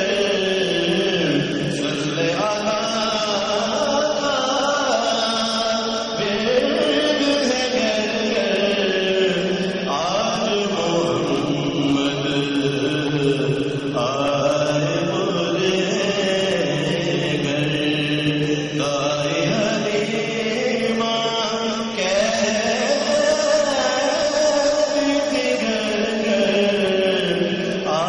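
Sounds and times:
man chanting: 0.0 - 28.0.

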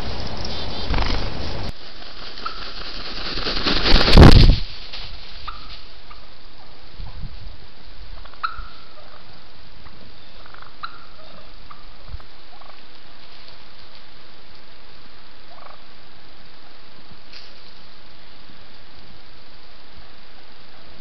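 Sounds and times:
turkeys calling: 0.0 - 4.0, 5.4 - 7.2, 8.1 - 16.2
steady background hiss: 0.0 - 21.0.

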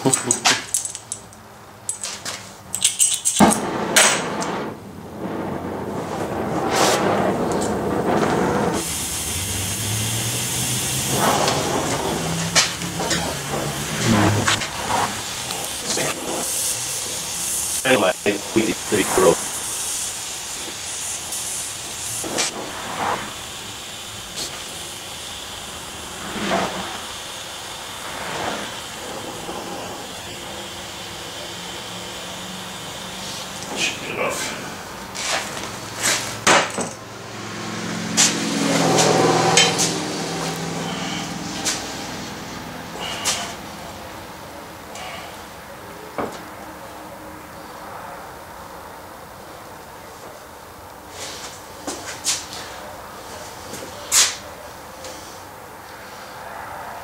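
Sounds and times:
gas torch flame hissing: 2.7 - 49.8, 50.5 - 56.5.

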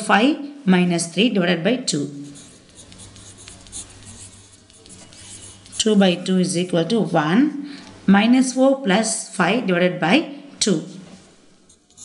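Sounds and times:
pen scratching on paper: 2.2 - 6.0.

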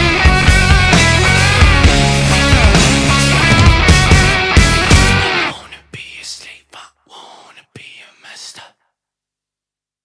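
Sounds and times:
whispered vocal: 5.4 - 9.0.

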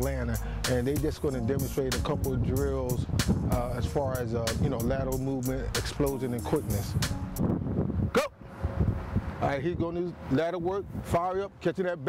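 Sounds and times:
wind on microphone: 0.0 - 11.4
traffic rumble: 0.0 - 12.0.

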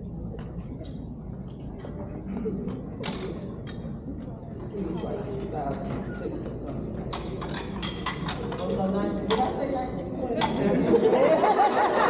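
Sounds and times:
murmur of chatter: 0.0 - 12.0
cutlery and dishes clattering: 0.3 - 1.2, 2.7 - 10.8.

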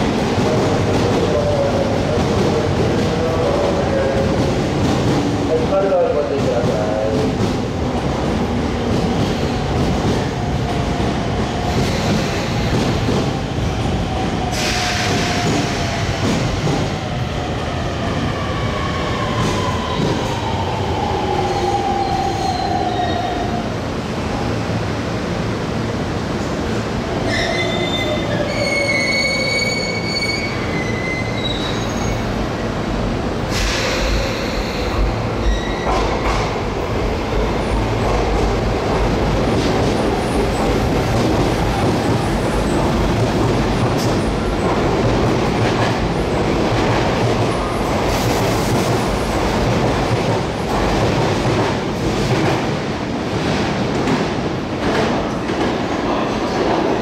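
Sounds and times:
train rumbling and clattering on rails: 0.0 - 57.0
train squeal and falling whine: 27.2 - 32.3, 33.5 - 36.1.

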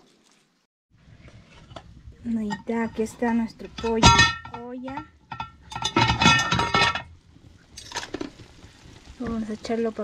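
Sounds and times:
metal pot lid clanking: 1.6 - 7.2.

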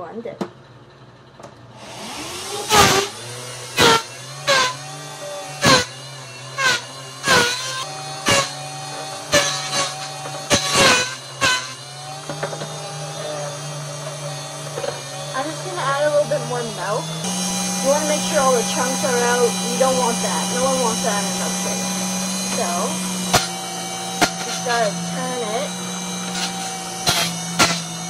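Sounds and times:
electric blender running: 1.1 - 28.0.

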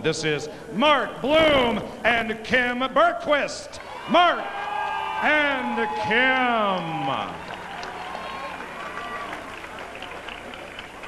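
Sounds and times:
scattered claps: 6.3 - 11.0.

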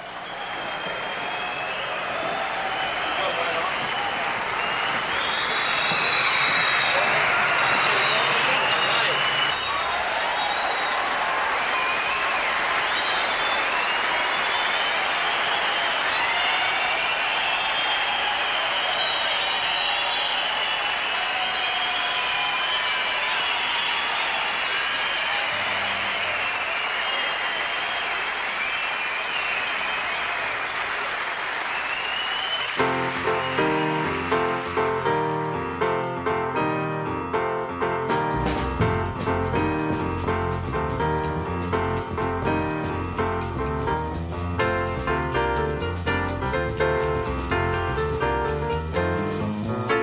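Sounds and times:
audience applauding: 0.0 - 36.6, 38.1 - 50.0
jazz piano: 32.8 - 50.0.

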